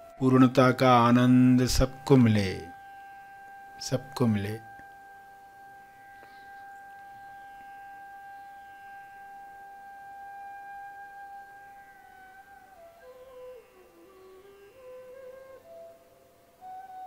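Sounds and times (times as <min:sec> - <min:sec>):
soft instrumental music: 0:00.0 - 0:17.0.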